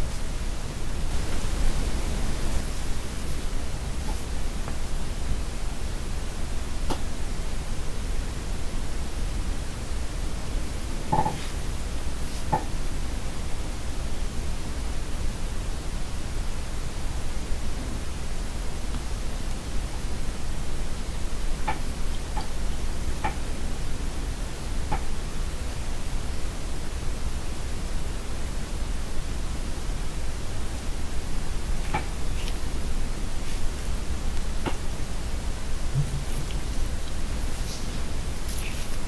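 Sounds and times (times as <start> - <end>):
steady hiss: 0.0 - 39.0.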